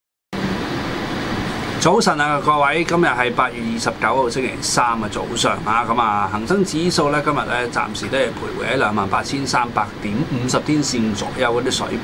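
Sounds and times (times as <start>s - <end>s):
faint low hum: 0.4s - 12.0s
man speaking: 1.8s - 12.0s.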